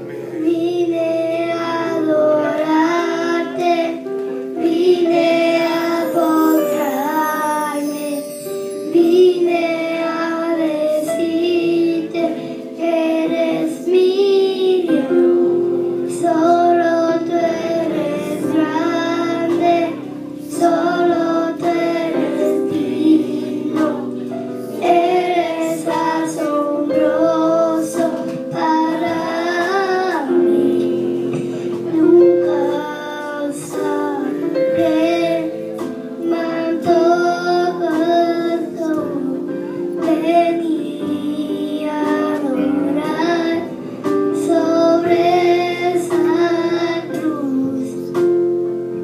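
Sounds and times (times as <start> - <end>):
instrumental accompaniment: 0.0 - 49.0
girl singing into a microphone: 0.1 - 48.4.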